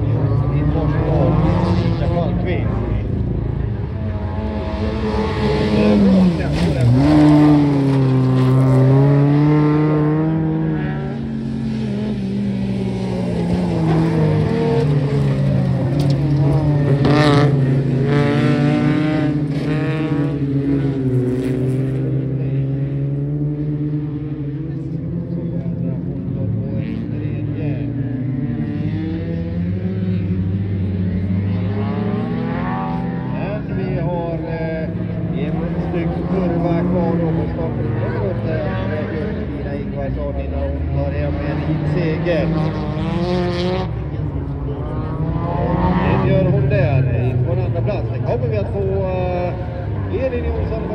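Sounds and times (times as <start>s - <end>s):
race car engine revving: 0.0s - 50.9s.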